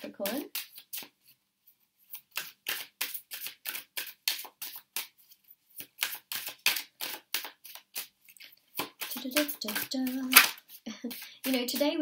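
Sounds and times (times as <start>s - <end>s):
cards being shuffled: 0.2s - 12.0s.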